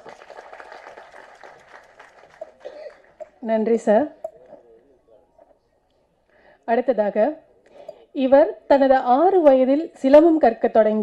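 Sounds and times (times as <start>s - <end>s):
audience applause: 0.0s - 3.4s.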